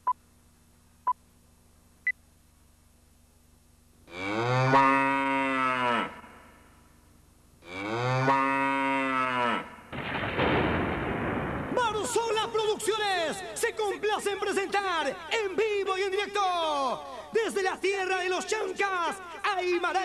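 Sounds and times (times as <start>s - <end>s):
cattle mooing: 4.1s - 6.5s, 7.6s - 9.8s.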